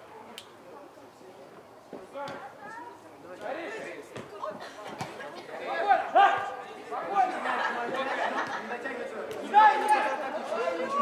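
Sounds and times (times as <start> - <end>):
people shouting: 5.8 - 7.3, 9.4 - 11.0.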